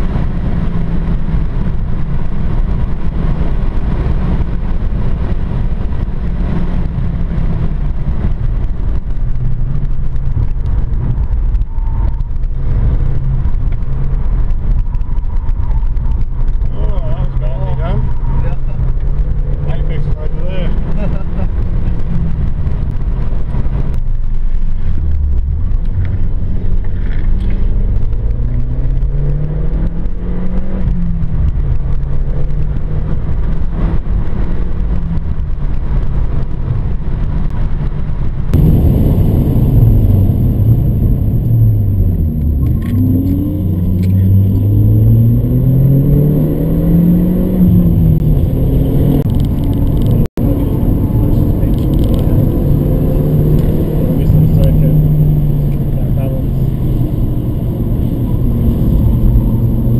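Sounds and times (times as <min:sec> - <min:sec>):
car engine revving: 0:00.0 - 0:59.9
road and tyre noise: 0:00.0 - 0:59.9.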